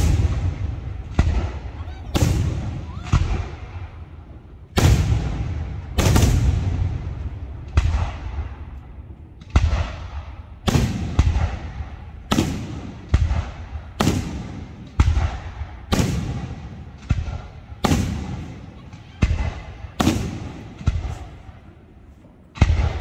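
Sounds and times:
rolling echo: 0:00.0 - 0:23.0.

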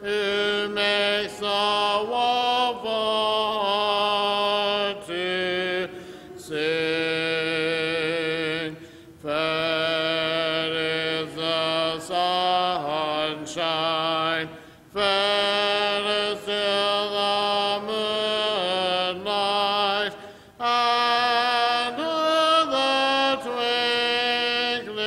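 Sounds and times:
congregation singing a hymn: 0:00.0 - 0:25.0.

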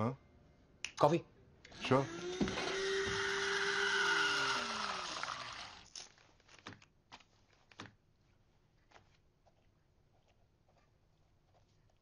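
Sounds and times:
coffee machine motor hum: 0:02.1 - 0:05.8.

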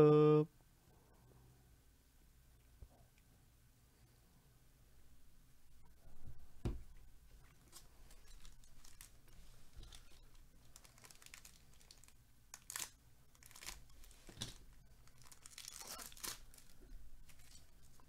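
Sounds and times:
foil wrapper crinkling: 0:07.5 - 0:18.0
foil pack tearing: 0:10.7 - 0:16.8.

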